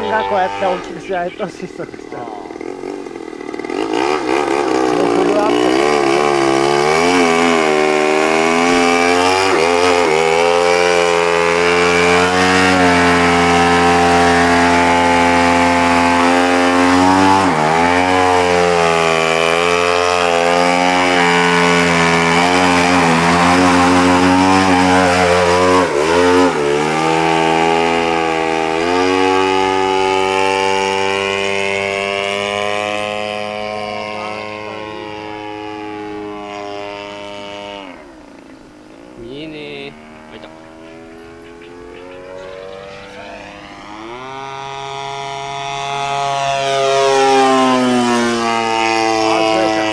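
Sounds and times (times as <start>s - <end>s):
model airplane engine buzzing: 0.0s - 49.9s.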